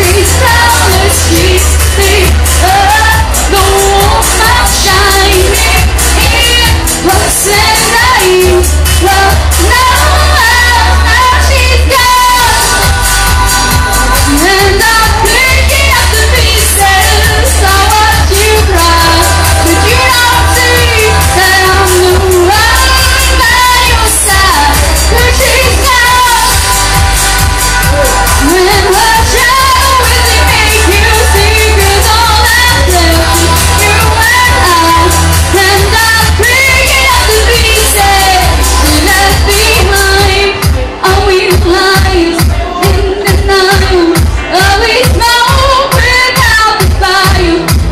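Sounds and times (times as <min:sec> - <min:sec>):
heavy bass beat: 0:00.0 - 0:47.9
live band playing: 0:00.0 - 0:47.9
woman singing into a microphone: 0:00.0 - 0:47.9.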